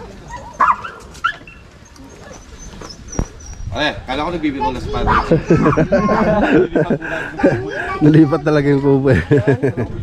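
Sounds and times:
dog barking: 0.3 - 1.4.

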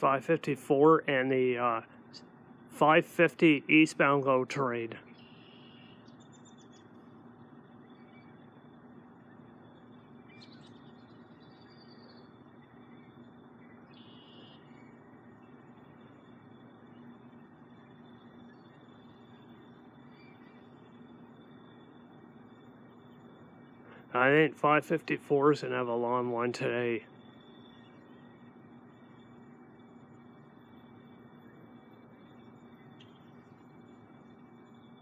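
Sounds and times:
low steady background noise: 0.0 - 35.0
short bird chirps: 5.1 - 6.8, 12.9 - 15.1.

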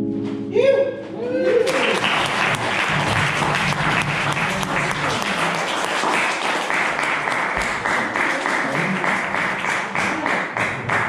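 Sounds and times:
whoop: 1.2 - 2.0
audience clapping and cheering: 1.4 - 11.0.

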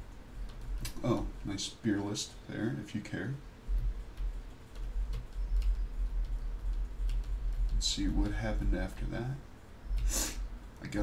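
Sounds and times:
computer mouse clicks: 0.4 - 1.0, 3.7 - 8.4.

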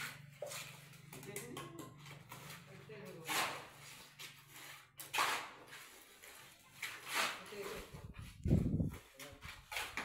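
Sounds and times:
hoe scraping wet mud on concrete: 0.0 - 10.0.

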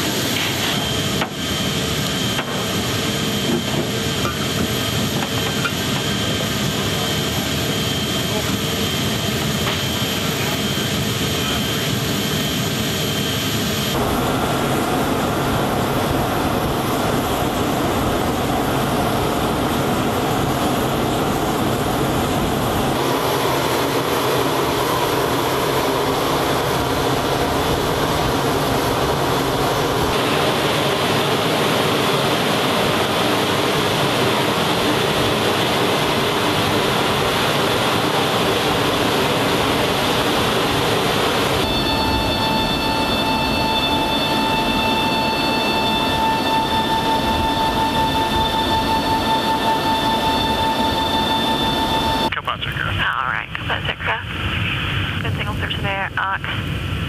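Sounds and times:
jet aircraft noise: 0.0 - 57.0
faint high whine: 5.8 - 56.7.

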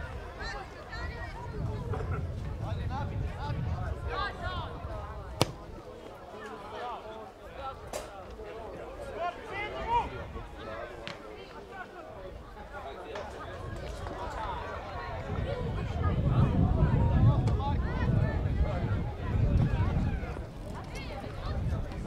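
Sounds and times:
football kicked with sharp thud: 5.4 - 5.7.

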